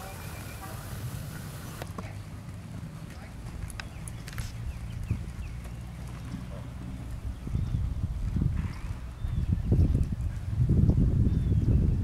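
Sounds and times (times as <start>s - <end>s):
horse hooves in sand: 0.0s - 11.2s.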